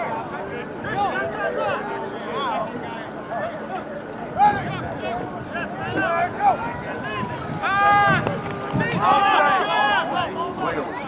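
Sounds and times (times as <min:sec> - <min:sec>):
people shouting and yelling: 0:00.0 - 0:11.0.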